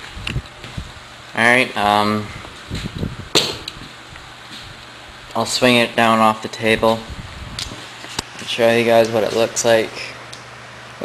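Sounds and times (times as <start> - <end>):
low workshop background: 0.0 - 11.0
sharp knock: 3.4 - 3.7.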